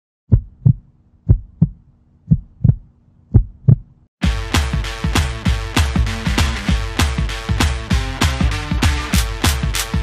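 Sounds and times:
heartbeat: 0.3s - 4.1s.

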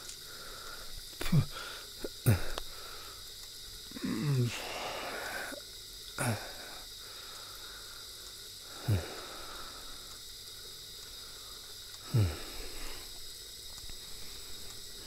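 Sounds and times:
faint high drone: 3.8s - 15.0s.

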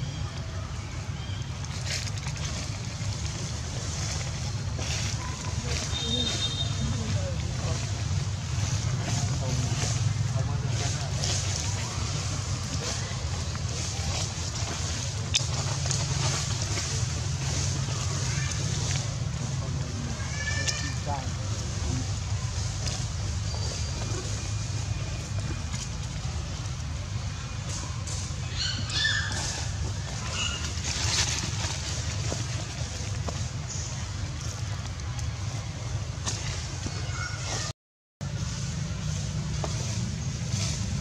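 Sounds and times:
low outdoor rumble: 0.0s - 41.0s.

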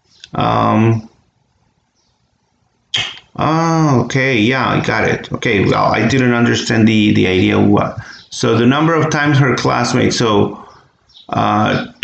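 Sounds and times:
man saying um: 0.3s - 1.1s, 3.0s - 10.7s, 11.3s - 12.0s
man speaking: 0.3s - 1.1s, 3.0s - 12.0s.

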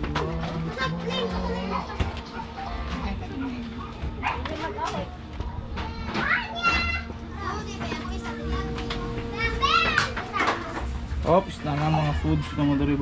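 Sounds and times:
children playing and shouting: 0.0s - 13.0s.

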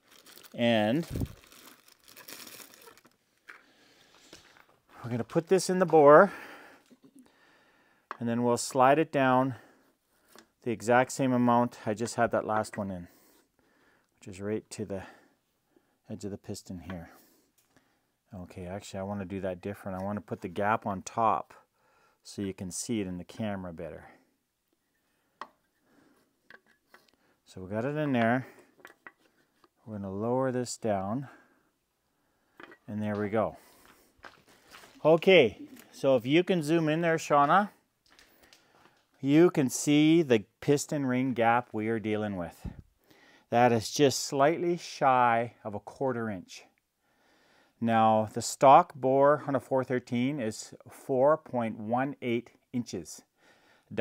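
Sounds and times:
packaging crinkling and rustling: 0.0s - 5.5s, 33.8s - 36.0s.

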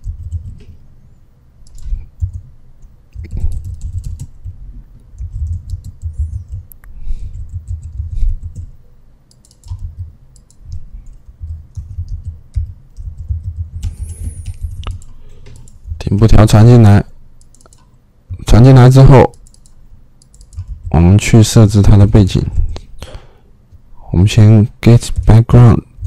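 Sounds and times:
typing on computer keyboard: 0.0s - 0.8s, 1.6s - 8.7s, 9.3s - 16.0s, 17.4s - 17.9s, 19.2s - 21.1s.

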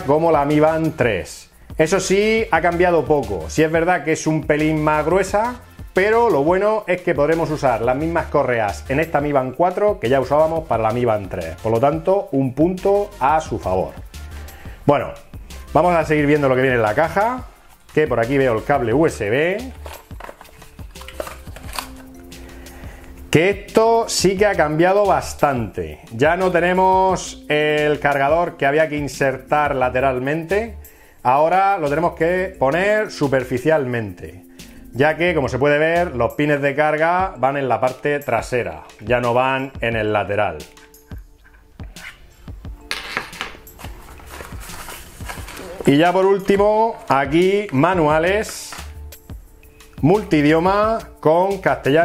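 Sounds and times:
soft background music: 0.0s - 52.0s
cardboard box handled: 43.2s - 46.0s.

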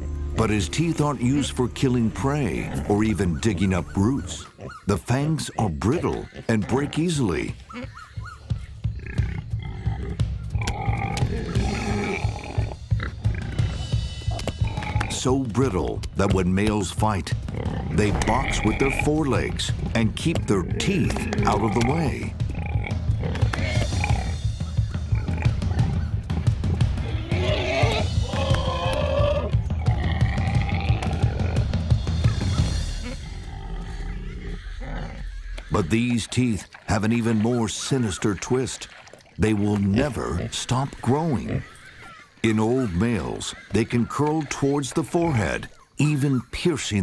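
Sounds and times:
wild pigs calling: 0.4s - 47.0s
music with pulsing drum beat: 8.2s - 16.6s, 17.3s - 33.2s.

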